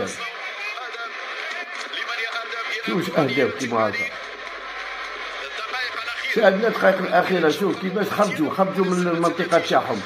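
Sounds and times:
speech through a loudspeaker: 0.0s - 4.3s, 5.3s - 10.0s.

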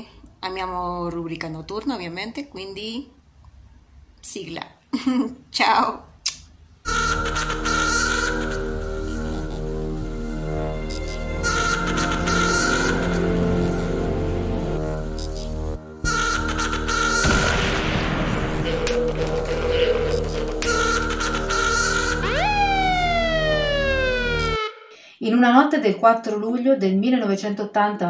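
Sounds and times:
kissing smack: 6.2s - 6.5s
theme music chord: 6.9s - 24.9s
metal casing clinking on floor: 18.9s - 19.7s.

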